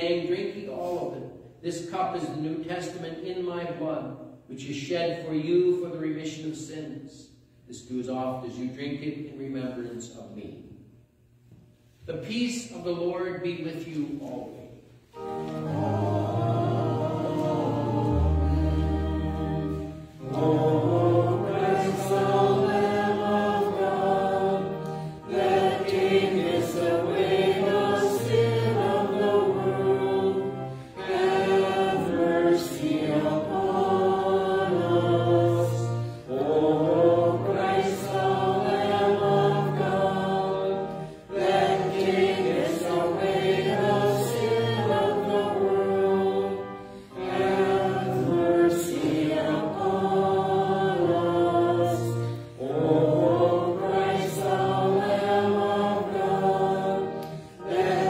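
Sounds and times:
congregation singing a hymn: 0:13.6 - 0:58.0.

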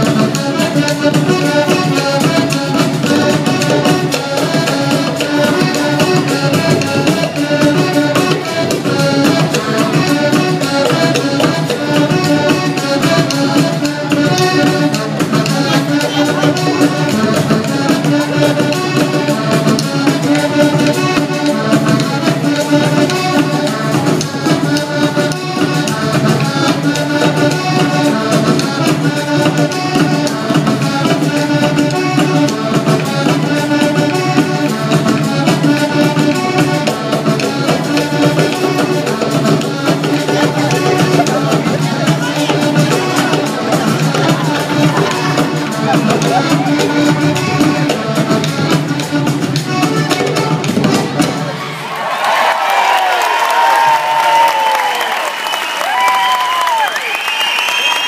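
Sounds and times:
accordion: 0:00.0 - 0:51.5
violin: 0:00.0 - 0:51.7
percussion beat: 0:00.0 - 0:58.0.

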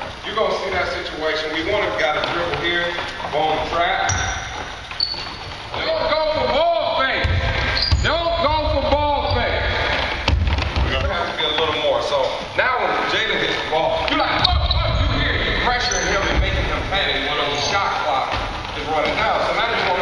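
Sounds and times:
sneakers squeaking: 0:00.7 - 0:12.5, 0:13.6 - 0:20.0
basketballs bouncing: 0:01.6 - 0:11.9, 0:14.0 - 0:20.0.

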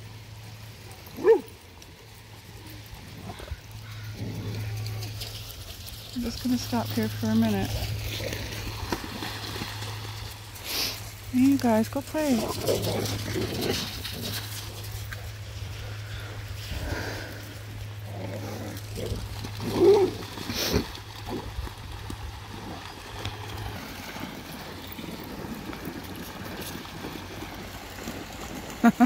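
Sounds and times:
dogs splashing through water: 0:00.0 - 0:29.0.

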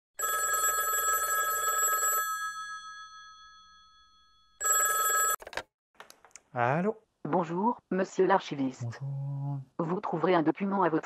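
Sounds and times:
telephone bell ringing: 0:00.2 - 0:05.4.

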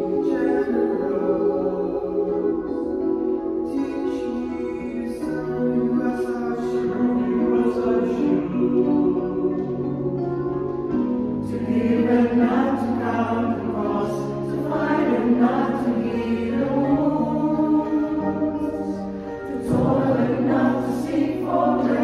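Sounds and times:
mixed choir singing a hymn: 0:00.0 - 0:22.0.

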